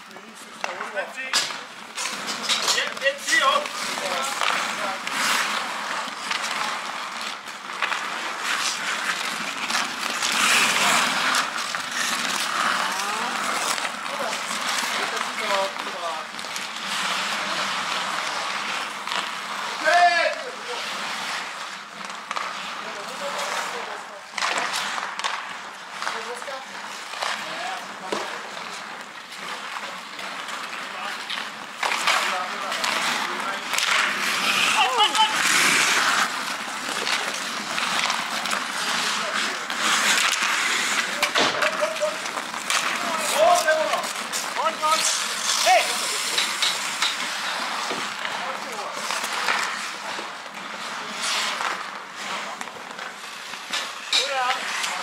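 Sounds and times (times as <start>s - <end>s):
hockey sticks clacking: 0.0s - 55.0s
skate blades scraping ice: 0.0s - 55.0s
players calling out: 0.7s - 21.1s, 29.7s - 49.9s.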